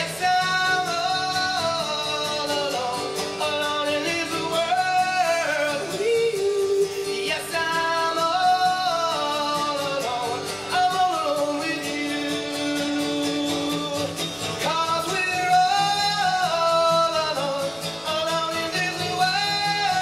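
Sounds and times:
acoustic guitar: 0:00.0 - 0:20.0
man singing folk song: 0:00.0 - 0:20.0.

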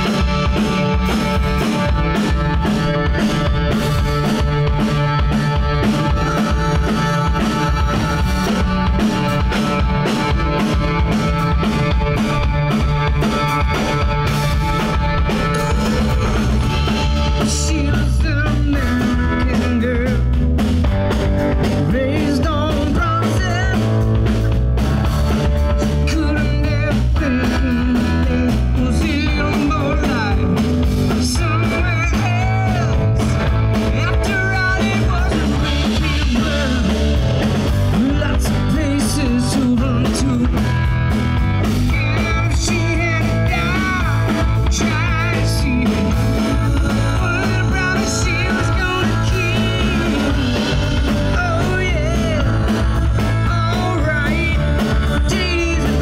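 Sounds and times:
drum kit: 0:00.0 - 0:56.0
electric bass: 0:00.0 - 0:56.0
electric guitar: 0:00.0 - 0:56.0
sung vocals: 0:00.0 - 0:56.0.

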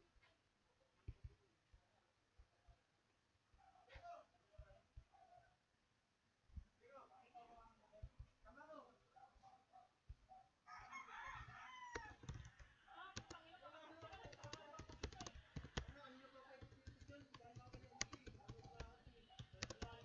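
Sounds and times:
keyboard typing: 0:11.0 - 0:20.0.

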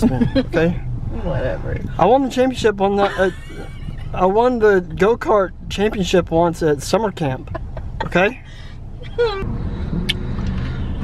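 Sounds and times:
car engine rumble: 0:00.0 - 0:11.0
road noise inside car: 0:00.0 - 0:11.0.

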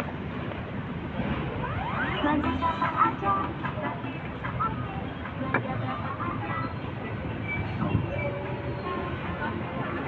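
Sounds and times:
road traffic: 0:00.0 - 0:10.0
passers-by talking: 0:01.4 - 0:10.0.

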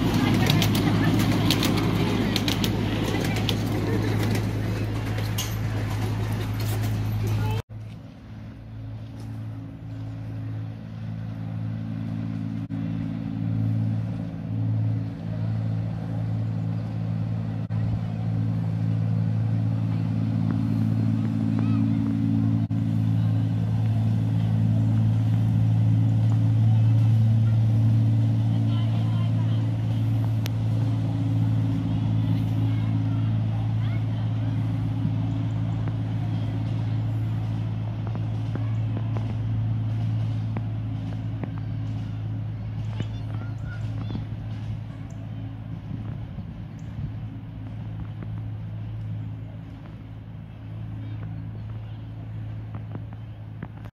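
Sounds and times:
miniature locomotive engine running: 0:00.0 - 0:07.6, 0:22.6 - 0:53.8.

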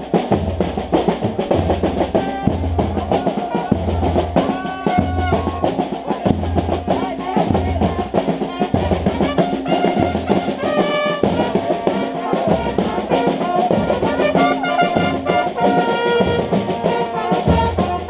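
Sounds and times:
bass drum beat: 0:00.0 - 0:16.8
snare drums rattling: 0:00.0 - 0:18.0
trumpets playing: 0:01.4 - 0:18.0.

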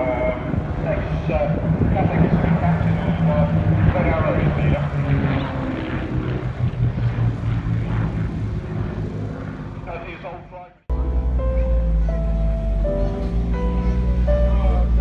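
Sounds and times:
propeller aircraft engine drone: 0:00.0 - 0:15.0.

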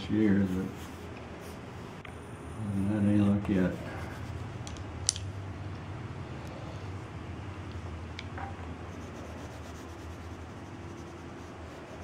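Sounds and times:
steady low hum: 0:00.0 - 0:12.0
pencil scratching on paper: 0:00.2 - 0:01.6, 0:03.6 - 0:04.6, 0:08.9 - 0:12.0.

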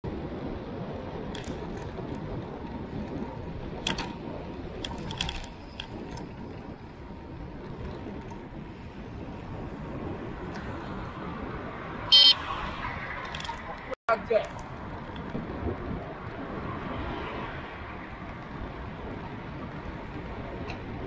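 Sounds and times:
wind rumble: 0:00.0 - 0:21.0
bicycle tyres rolling: 0:00.1 - 0:21.0
bike clicks and rattles: 0:00.4 - 0:21.0.

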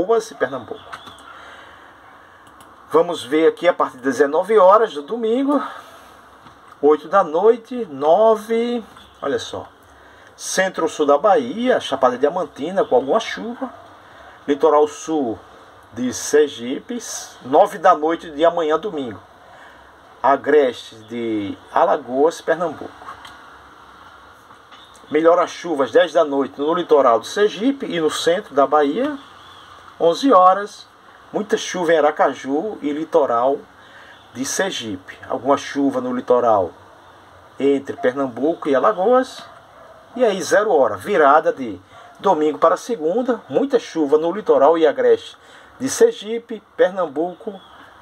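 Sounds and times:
man speaking: 0:00.0 - 0:00.9, 0:02.9 - 0:06.0, 0:06.8 - 0:09.8, 0:10.4 - 0:13.8, 0:14.4 - 0:19.2, 0:20.2 - 0:23.2, 0:25.1 - 0:29.3, 0:30.0 - 0:36.8, 0:37.6 - 0:39.5, 0:40.2 - 0:47.7
faint steady background hiss: 0:00.0 - 0:48.0
man breathing into microphone: 0:01.2 - 0:02.4, 0:45.4 - 0:45.8.

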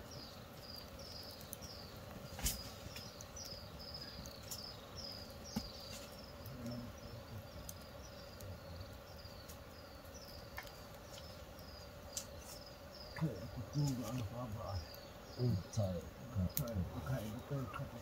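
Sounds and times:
insect chirping: 0:00.0 - 0:18.0.

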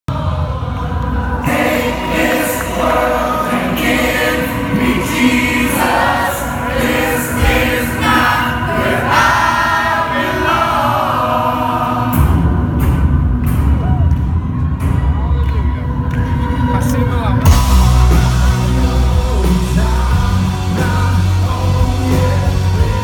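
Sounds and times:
crowd singing together: 0:00.1 - 0:13.3, 0:16.0 - 0:23.0
rock band playing: 0:17.4 - 0:23.0.

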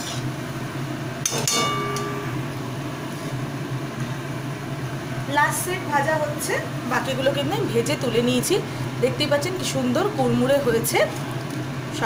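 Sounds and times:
food deep-frying in oil: 0:00.0 - 0:12.0
steady low hum: 0:00.0 - 0:12.0.

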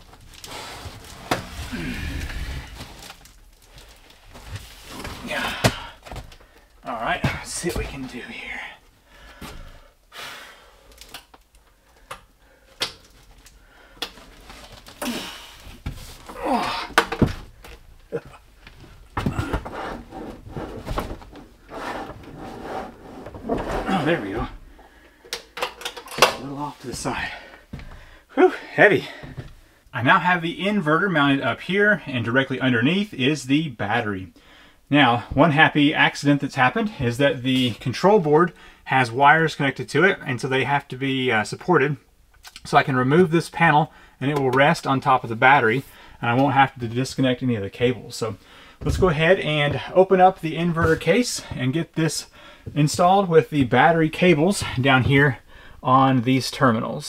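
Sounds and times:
man grunting and breathing hard: 0:01.6 - 0:02.8, 0:05.2 - 0:06.0, 0:16.4 - 0:17.0.

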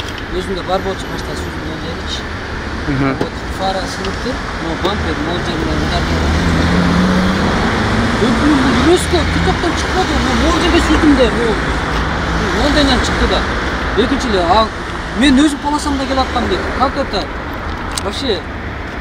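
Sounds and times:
road traffic noise: 0:00.0 - 0:19.0
people talking: 0:00.3 - 0:02.3, 0:02.9 - 0:06.5, 0:08.2 - 0:11.8, 0:12.4 - 0:17.3, 0:18.0 - 0:18.4.

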